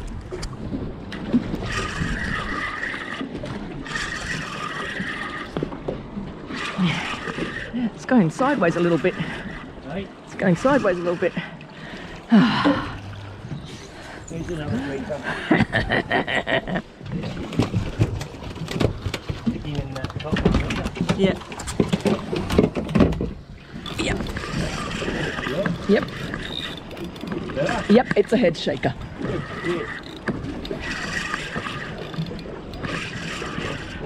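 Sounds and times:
water around a boat: 0.0 - 34.0
wind: 0.0 - 34.0
fishing reel being wound: 3.8 - 5.5, 23.8 - 34.0.

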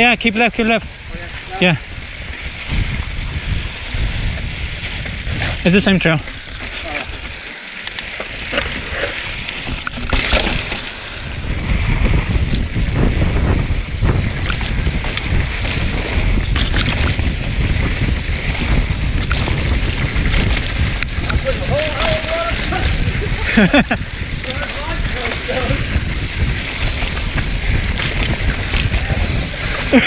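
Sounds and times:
wind rumbling on microphone: 0.0 - 30.0
bike chain and frame rattling: 0.6 - 30.0
tyres crunching over dirt: 4.2 - 11.4.

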